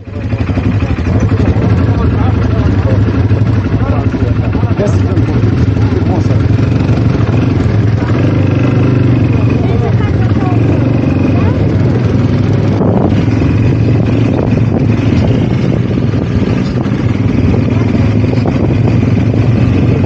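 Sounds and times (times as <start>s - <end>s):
people's voices: 0.0s - 20.0s
quad bike engine running: 0.0s - 20.0s.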